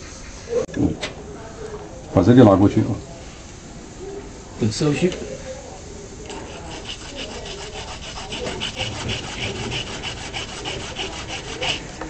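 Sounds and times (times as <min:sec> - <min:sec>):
hand saw cutting branch: 0:06.3 - 0:12.0.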